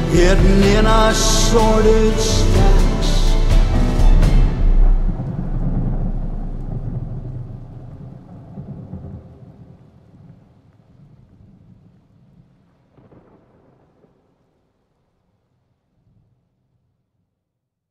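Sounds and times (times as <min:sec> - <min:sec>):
song music: 0:00.0 - 0:07.8
thunder rolling: 0:00.0 - 0:14.2.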